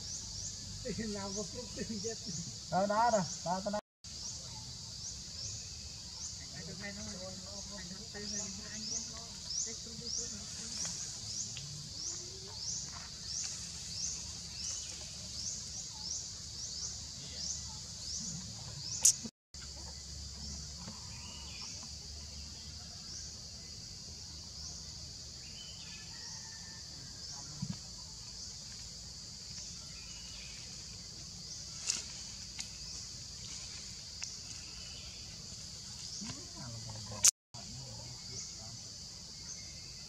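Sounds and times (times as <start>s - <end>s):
high-pitched insect chorus: 0.0s - 40.0s.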